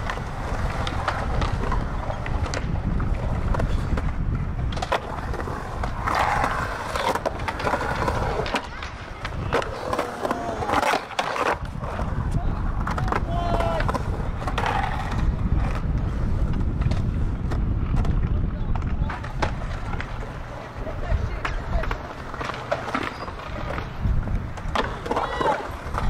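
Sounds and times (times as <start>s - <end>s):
skateboard clacking on concrete: 0.0s - 26.0s
skateboard wheels rolling on concrete: 0.0s - 26.0s.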